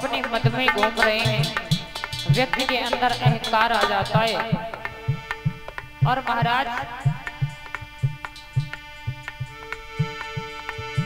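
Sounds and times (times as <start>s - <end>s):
hand drum beat: 0.0s - 11.0s
sustained chord: 0.0s - 11.0s
ticking percussion strikes: 0.0s - 11.0s.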